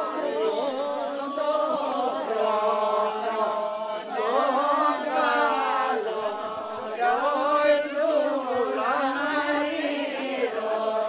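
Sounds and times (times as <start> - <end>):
group singing unaccompanied: 0.0 - 11.0.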